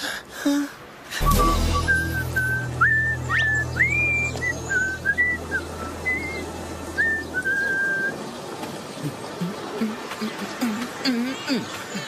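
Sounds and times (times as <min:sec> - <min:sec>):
person whistling a tune: 0:01.2 - 0:06.4
low sustained musical drone: 0:01.2 - 0:08.4.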